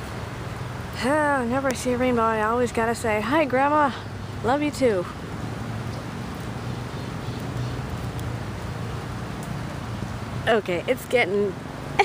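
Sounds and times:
rain falling: 0.0s - 12.0s.

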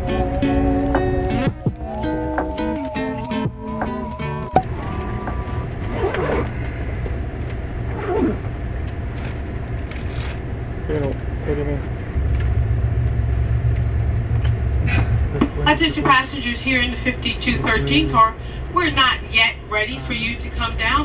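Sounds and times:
background music: 0.0s - 5.8s
train coach rumble: 0.0s - 21.0s
faint voices: 15.3s - 18.4s.

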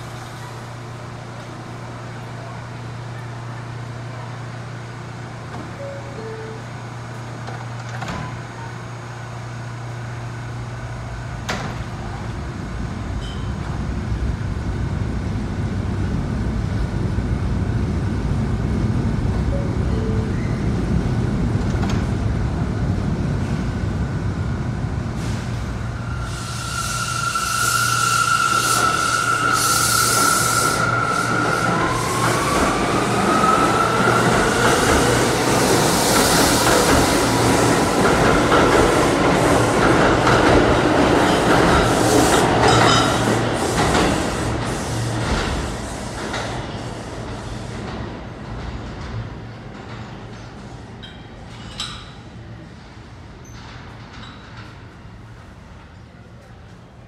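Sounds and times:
train low hum: 0.0s - 57.0s.

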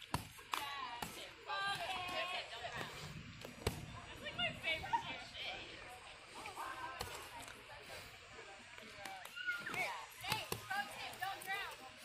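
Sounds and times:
boxing gloves slapping: 0.0s - 1.3s
people's voices: 0.4s - 12.0s.

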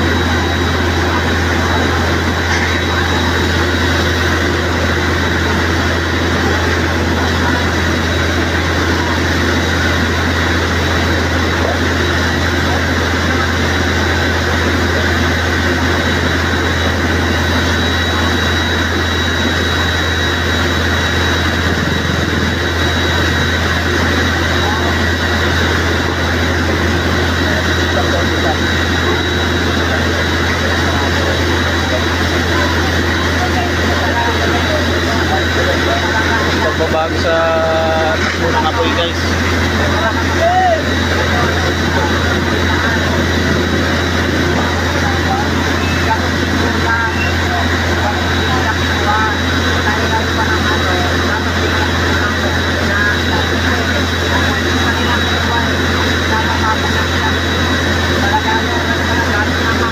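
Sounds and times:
crowd voices: 0.0s - 59.9s
fire truck water pump drone: 0.0s - 59.9s.

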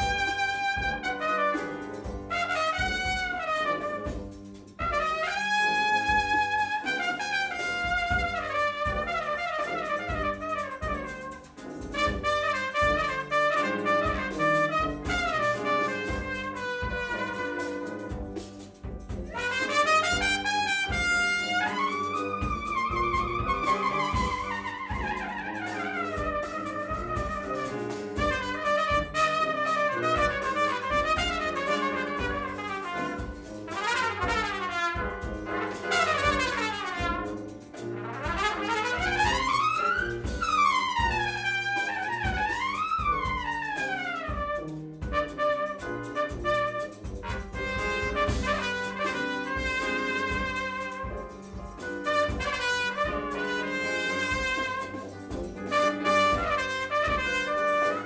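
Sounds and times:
piano: 0.0s - 58.0s
trumpet lead: 0.0s - 58.0s
tubas: 0.0s - 58.0s.

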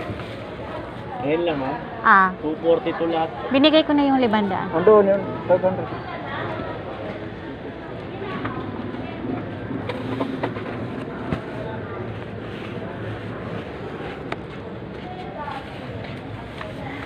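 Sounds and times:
faint voices: 0.0s - 17.0s.

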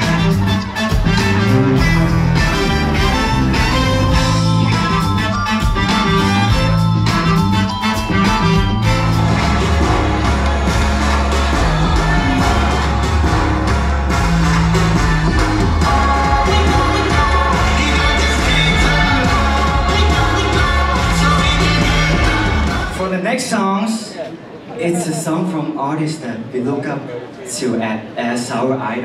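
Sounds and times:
live pop band with heavy bass: 0.0s - 23.1s
man singing: 15.8s - 23.0s.

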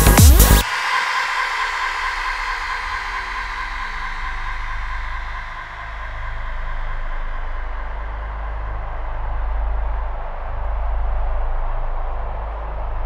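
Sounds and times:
low pulsing drone: 0.0s - 13.0s.

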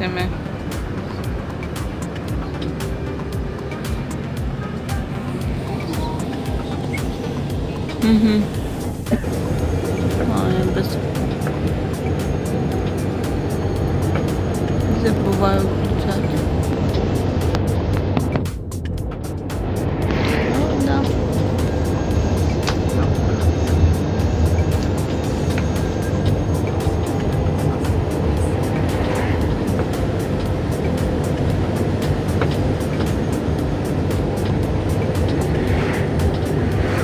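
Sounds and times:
bus engine and road rumble: 0.0s - 37.0s
music playing: 0.0s - 37.0s.

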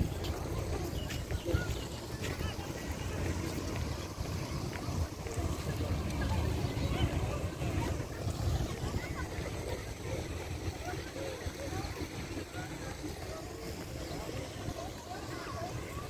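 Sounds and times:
wind buffeting microphone: 0.0s - 12.2s
faint chatter of people: 0.0s - 16.0s.

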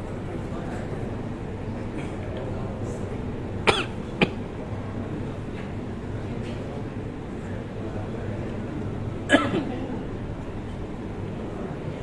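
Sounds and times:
low room hum: 0.0s - 12.0s
man coughing: 3.7s - 4.4s, 9.3s - 9.7s.

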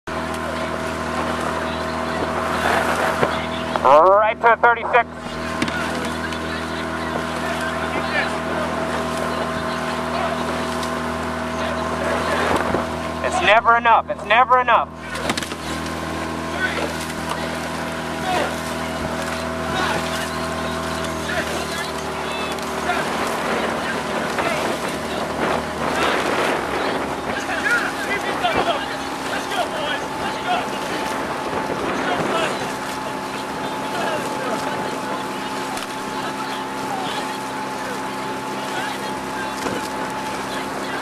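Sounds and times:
outboard motor running: 0.0s - 41.0s
water rushing: 0.0s - 41.0s
man calling out: 3.8s - 5.2s, 13.2s - 15.2s.

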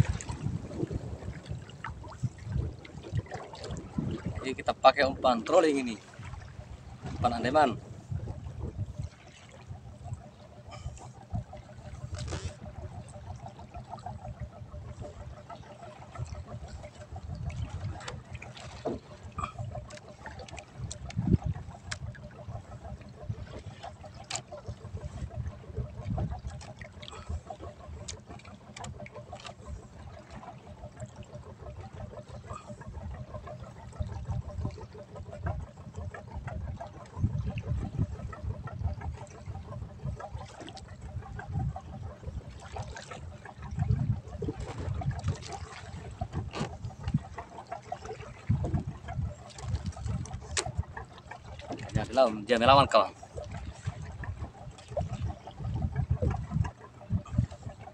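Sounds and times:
wind buffeting microphone: 0.0s - 30.0s, 31.7s - 57.9s
water sloshing against boat hull: 0.0s - 57.9s.

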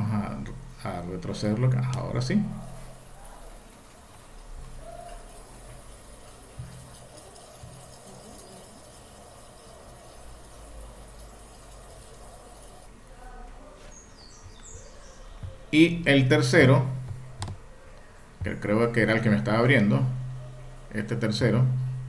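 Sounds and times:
low hum and hiss: 0.0s - 22.0s.

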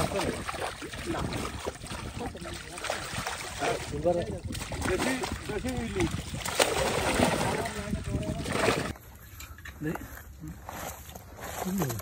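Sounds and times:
fish splashing in shallow water: 0.0s - 9.0s
water sloshing: 0.0s - 9.0s.

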